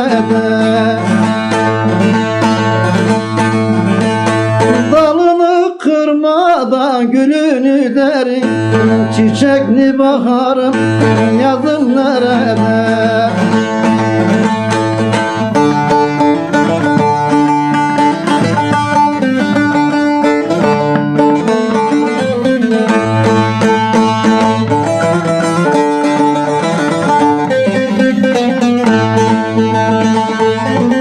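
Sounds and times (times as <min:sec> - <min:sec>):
plucked long-necked lute melody: 0:00.0 - 0:06.0, 0:06.6 - 0:31.0.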